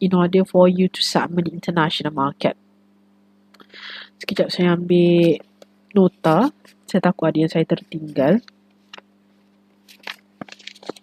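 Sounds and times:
faint steady hum: 0.0 - 11.0
paper rustling: 9.8 - 11.0.

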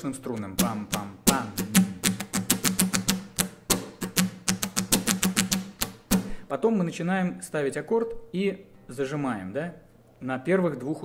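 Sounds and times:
acoustic guitar strummed muted: 0.5 - 6.4.

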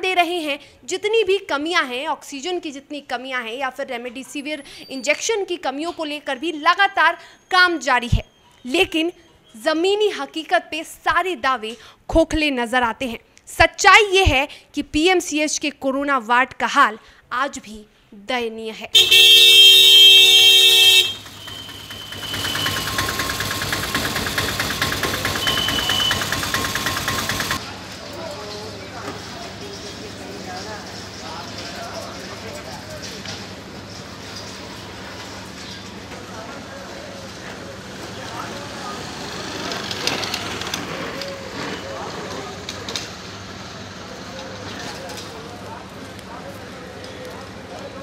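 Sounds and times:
traffic noise: 18.9 - 48.0
motorcycle: 19.0 - 27.7, 37.4 - 45.1
indistinct voices of passers-by: 19.1 - 48.0
small engine idling: 20.2 - 27.8.

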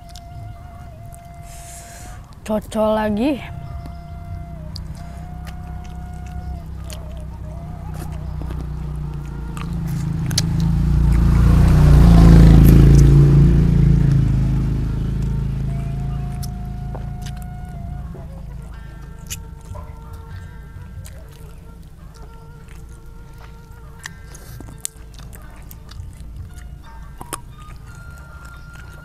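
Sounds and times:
chewing clicks: 0.0 - 0.4, 4.7 - 11.6, 17.2 - 29.0
motor vehicle passing by: 0.0 - 29.0.

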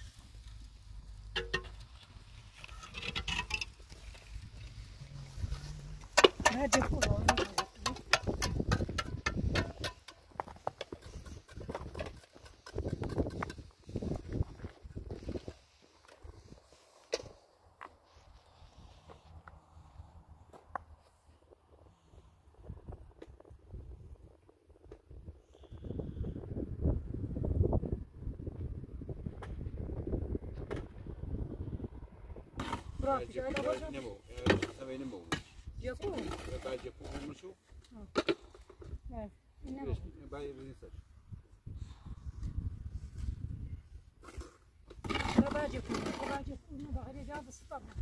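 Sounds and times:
trowel knocking on concrete blocks: 6.1 - 13.7.

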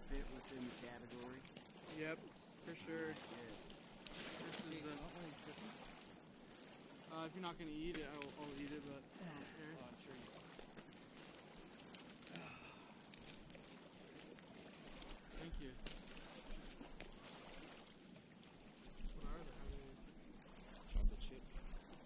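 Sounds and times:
waves lapping on pebble shore: 0.0 - 22.0.

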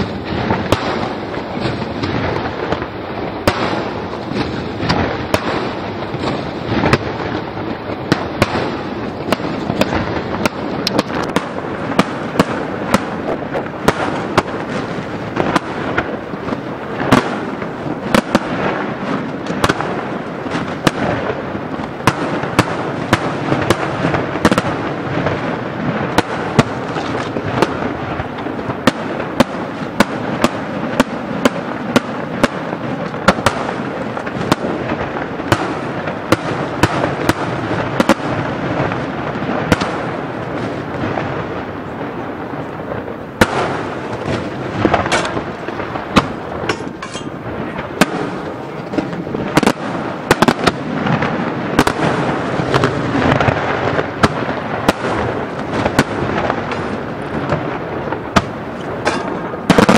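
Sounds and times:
firework shells bursting: 0.0 - 24.8, 43.1 - 59.9.

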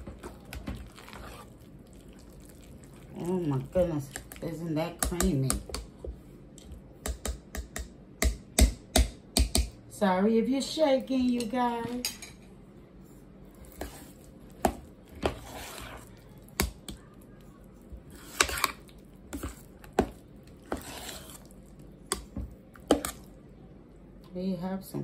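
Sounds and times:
mashed potatoes squelching: 0.0 - 7.0, 12.9 - 24.4.

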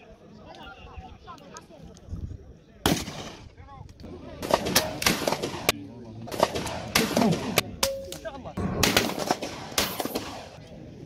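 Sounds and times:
shotgun shot with echo: 8.6 - 10.6.

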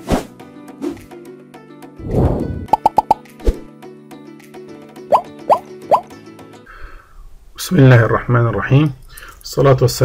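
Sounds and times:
pops: 2.2 - 3.6.

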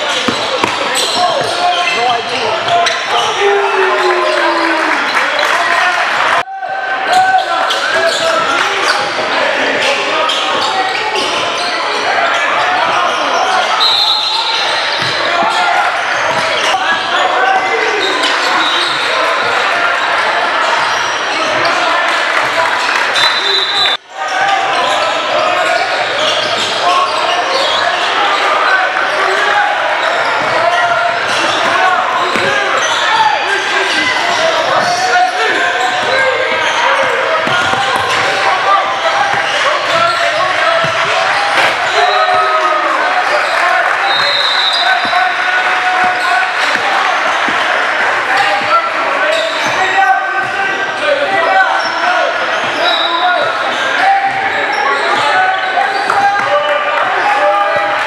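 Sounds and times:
overlapping voices in a hall: 0.0 - 58.0.

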